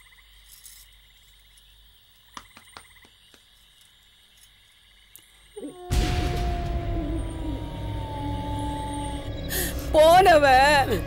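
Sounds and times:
loud sound: 5.8 - 11.0.

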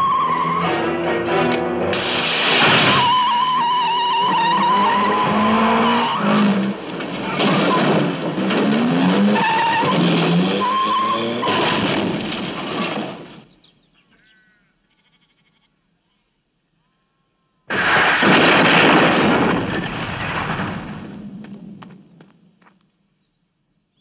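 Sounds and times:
car engines revving: 0.0 - 12.4
tyres squealing: 2.6 - 11.9.

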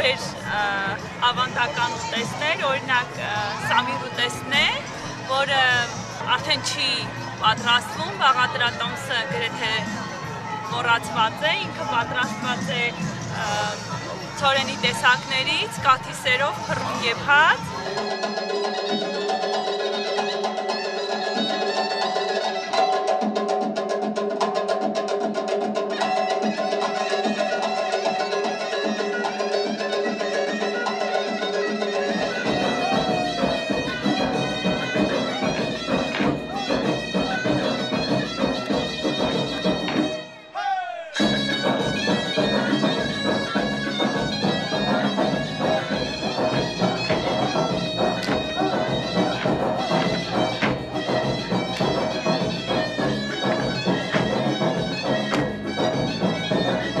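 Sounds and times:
folk dance music: 0.0 - 24.4, 25.8 - 57.0
reedy wind instrument melody: 25.9 - 57.0.

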